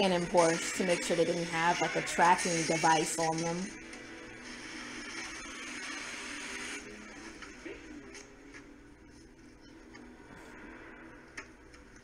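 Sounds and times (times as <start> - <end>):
steady noise: 0.0 - 12.0.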